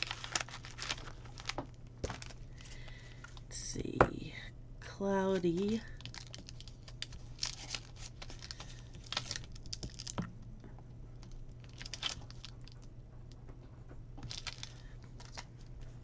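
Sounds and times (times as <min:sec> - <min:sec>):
plastic sheet crinkling: 0:00.0 - 0:03.4, 0:05.3 - 0:10.3, 0:11.2 - 0:12.8, 0:14.2 - 0:15.7
plastic rustling: 0:00.0 - 0:03.5, 0:05.3 - 0:10.3, 0:11.2 - 0:12.9, 0:14.2 - 0:16.0
low steady hum: 0:00.0 - 0:16.0.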